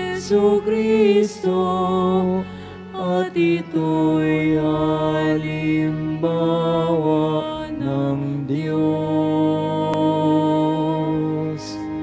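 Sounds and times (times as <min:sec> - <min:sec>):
slow meditative church music: 0:00.0 - 0:12.0.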